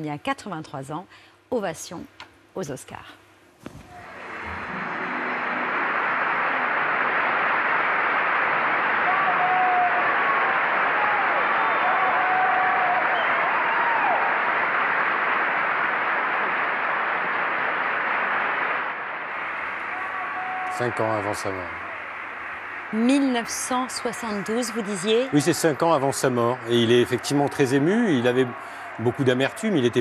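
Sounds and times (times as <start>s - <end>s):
audience applause: 3.8s - 30.0s.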